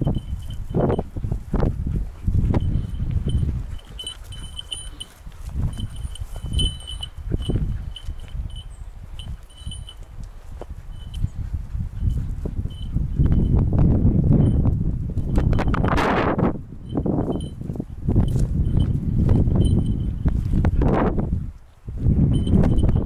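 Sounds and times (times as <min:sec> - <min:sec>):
dog collar bell tinkling: 0:00.0 - 0:01.2, 0:02.6 - 0:11.4, 0:12.0 - 0:13.7, 0:14.3 - 0:16.2, 0:16.8 - 0:20.6, 0:22.3 - 0:23.0.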